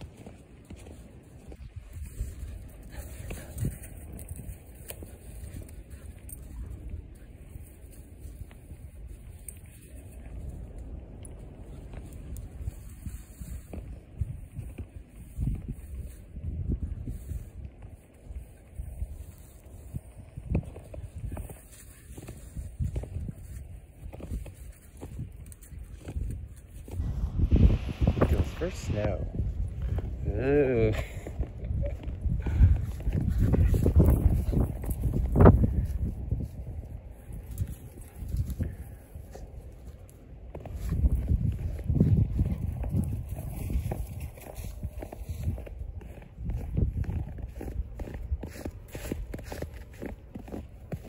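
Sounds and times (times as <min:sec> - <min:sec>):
footsteps crunching through snow: 0:00.0 - 0:05.6, 0:32.8 - 0:51.0
low rumble of wind: 0:00.0 - 0:51.0.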